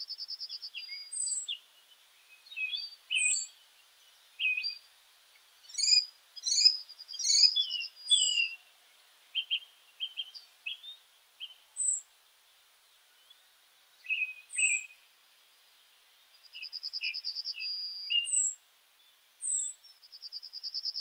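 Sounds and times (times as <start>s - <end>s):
birds chirping and singing: 0.6s - 3.6s, 5.6s - 8.6s, 9.4s - 12.0s, 14.0s - 15.0s, 16.6s - 18.6s.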